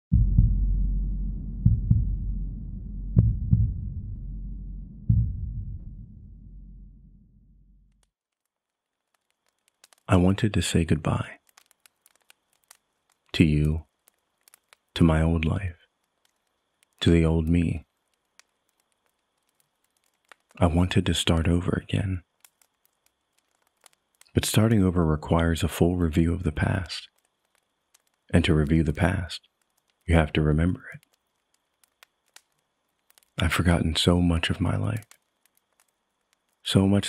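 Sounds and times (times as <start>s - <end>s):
heartbeat thumps: 0.1s - 7.0s
low steady hum: 8.8s - 37.0s.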